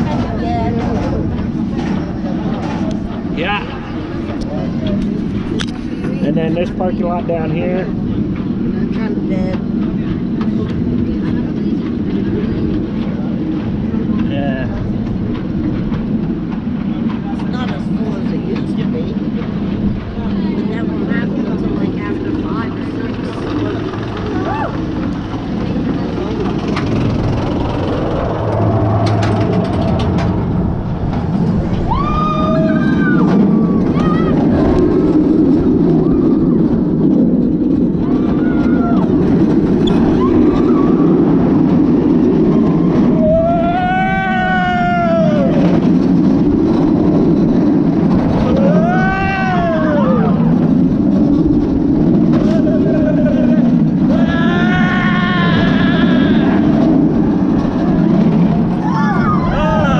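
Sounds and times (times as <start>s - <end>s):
roller coaster chain lift rumbling: 0.0s - 59.9s.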